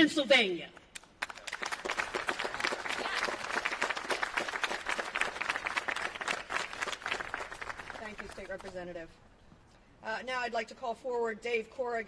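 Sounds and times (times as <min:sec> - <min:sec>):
crowd applauding: 0:01.2 - 0:08.7.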